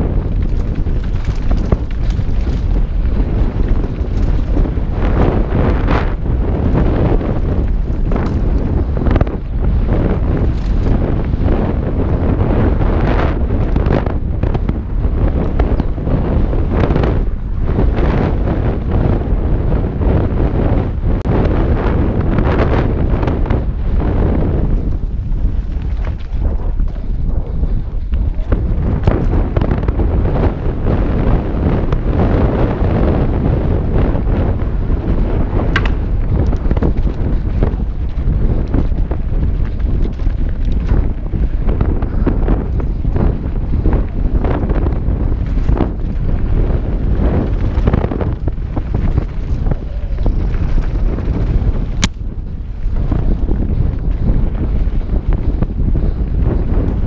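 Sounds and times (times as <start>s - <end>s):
bike knocks and rattles: 0.0s - 19.2s, 24.2s - 57.0s
tyre noise on dirt trail: 0.0s - 57.0s
wind rushing over microphone: 0.0s - 57.0s.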